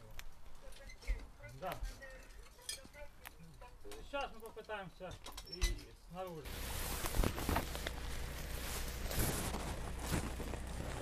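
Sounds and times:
clinks of brick and metal handled: 1.5s - 5.9s.

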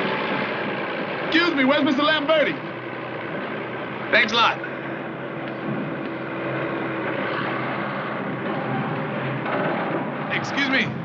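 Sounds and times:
heavy machinery engine running: 0.0s - 11.0s.

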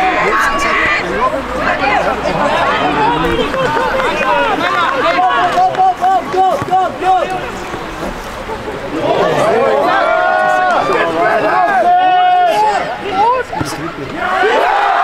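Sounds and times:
voices shouting and calling: 0.0s - 15.0s.

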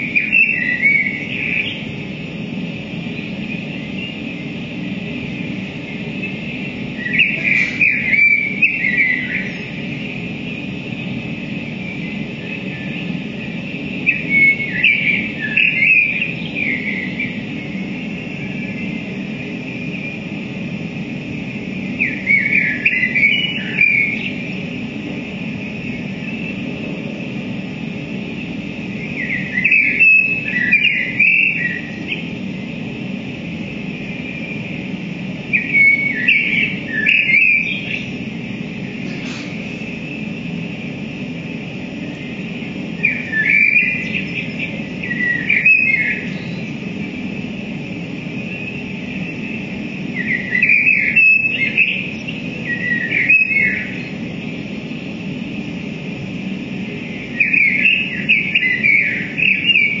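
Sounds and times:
high hiss: 0.0s - 60.0s
low electronic drone: 0.0s - 60.0s
bird-like electronic chirps: 5.8s - 10.0s, 28.9s - 32.3s, 35.4s - 38.3s, 42.0s - 47.0s, 48.4s - 54.3s, 57.1s - 60.0s.

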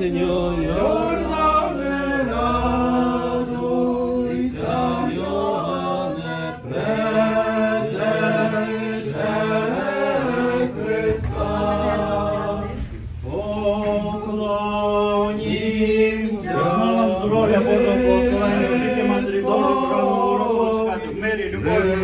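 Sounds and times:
voices chanting a hymn: 0.0s - 22.0s.

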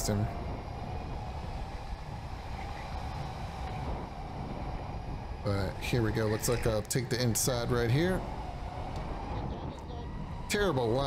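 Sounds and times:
tyres and air rushing: 0.0s - 11.0s.

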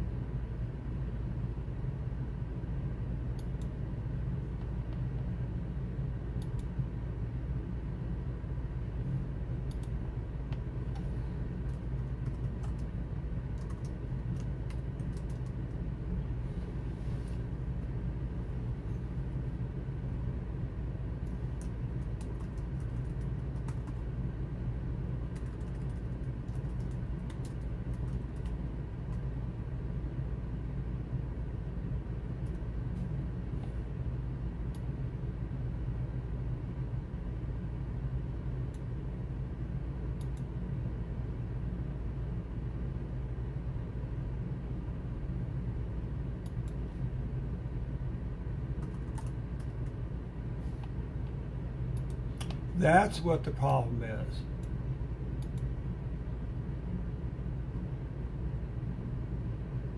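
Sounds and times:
steady low hum: 0.0s - 59.9s
computer keyboard typing: 11.6s - 12.9s, 13.5s - 15.7s, 21.6s - 24.0s, 25.3s - 28.6s, 48.8s - 49.7s.

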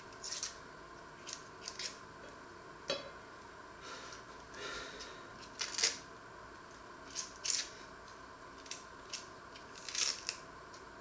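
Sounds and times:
onion skin crackling: 0.1s - 0.6s, 1.2s - 2.0s, 5.0s - 10.8s.

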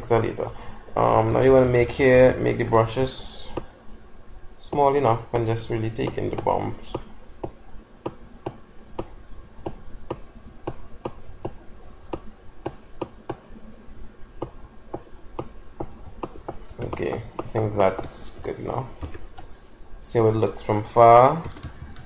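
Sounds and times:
computer mouse clicking: 6.0s - 13.8s, 14.4s - 19.8s, 21.3s - 22.0s.

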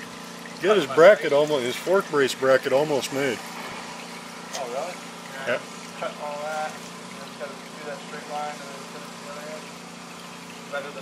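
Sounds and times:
oil dribbling into a plastic pan: 0.0s - 11.0s.

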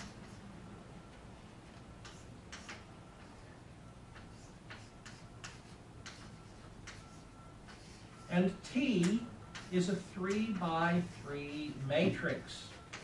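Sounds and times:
chalk writing on chalkboard: 0.0s - 0.4s, 2.0s - 13.0s.

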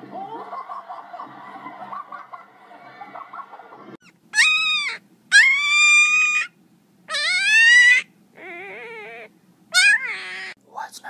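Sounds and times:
puppy whining howls: 4.0s - 6.5s, 7.1s - 10.6s.

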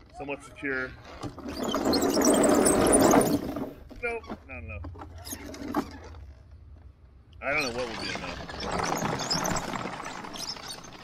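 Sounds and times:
electric motors and tracks: 7.6s - 11.0s.

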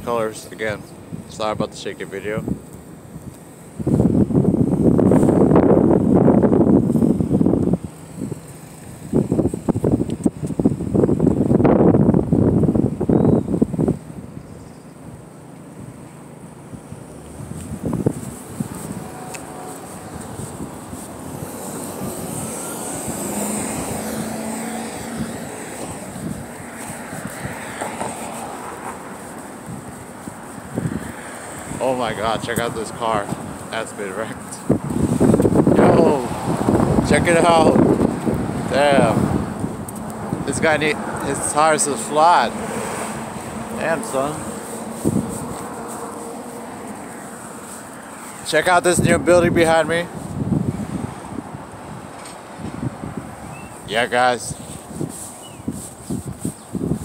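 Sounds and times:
wind buffeting microphone: 0.0s - 16.0s, 16.6s - 57.0s
street traffic noise: 0.0s - 57.0s
vehicle engine passing: 16.9s - 56.2s.

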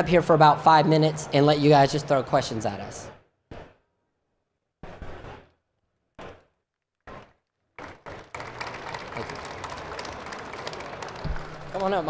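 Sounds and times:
audience clapping: 7.1s - 12.0s.

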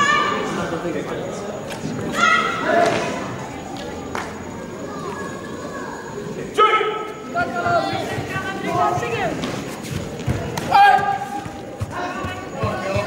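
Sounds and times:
people shouting in a hall: 0.0s - 0.8s, 2.0s - 3.8s, 4.4s - 9.5s, 10.3s - 13.0s.

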